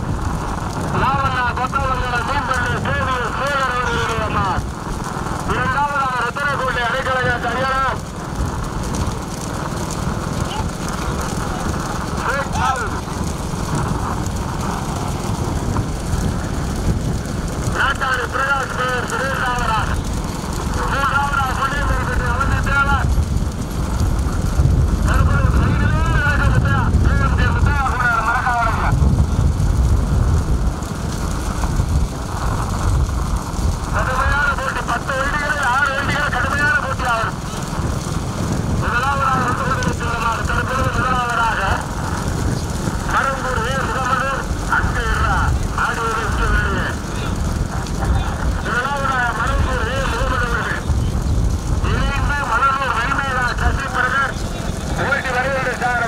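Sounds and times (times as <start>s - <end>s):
engine and wind rumble: 0.0s - 56.0s.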